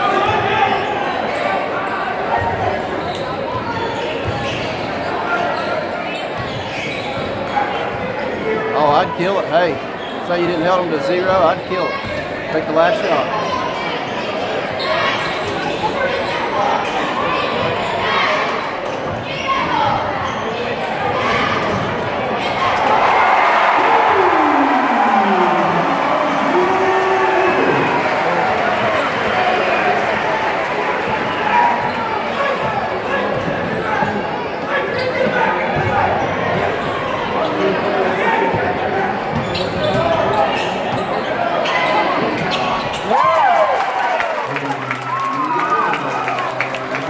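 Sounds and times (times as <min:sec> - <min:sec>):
crowd chatter and calls: 0:00.0 - 0:47.0.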